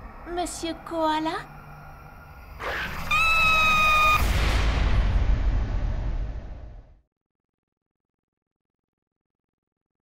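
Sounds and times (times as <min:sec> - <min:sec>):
low rumbling boom: 0:04.2 - 0:07.0.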